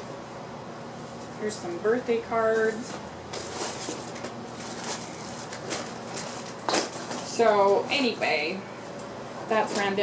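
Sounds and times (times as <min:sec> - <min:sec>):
paper cards rustling: 0:03.3 - 0:07.4.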